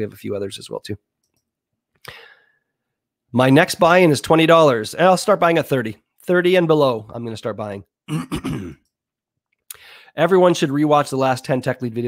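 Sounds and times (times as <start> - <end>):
man clearing his throat: 8.1 - 8.9.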